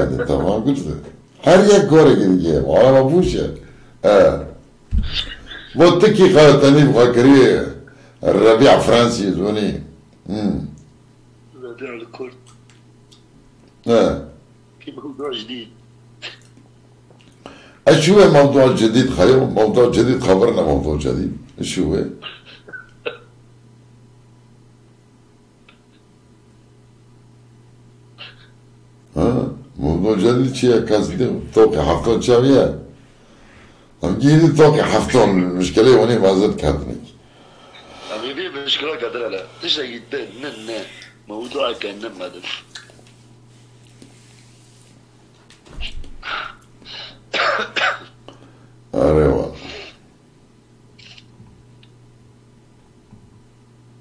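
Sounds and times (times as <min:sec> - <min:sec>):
faint low hum: 0:00.0 - 0:54.0
man coughing: 0:16.2 - 0:16.5, 0:22.2 - 0:23.4, 0:46.2 - 0:48.2
man hiccup-like vocal burst: 0:16.2 - 0:16.5, 0:22.2 - 0:23.4, 0:47.3 - 0:48.2.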